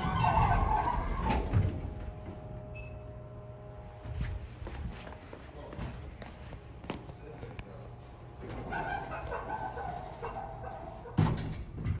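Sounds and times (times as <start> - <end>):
elevator doors closing: 0.0 - 3.6, 8.4 - 12.0
low hum: 0.0 - 11.9.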